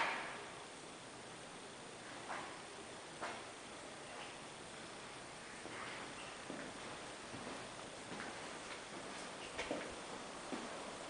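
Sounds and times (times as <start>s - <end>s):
faint room hiss: 0.0s - 11.0s
footsteps on hard floor: 5.6s - 9.9s, 10.5s - 10.8s.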